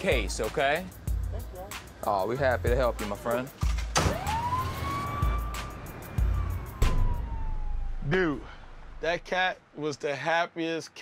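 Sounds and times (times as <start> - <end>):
background music with low beat: 0.0 - 8.2
ambulance siren wailing: 4.0 - 8.6
sharp hit: 4.0 - 9.2.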